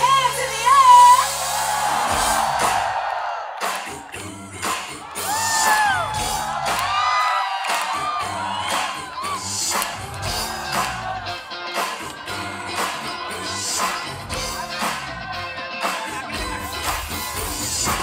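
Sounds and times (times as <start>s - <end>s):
crowd whooping and cheering: 0.0s - 18.0s
band playing with drum beat: 1.6s - 3.0s, 3.6s - 18.0s.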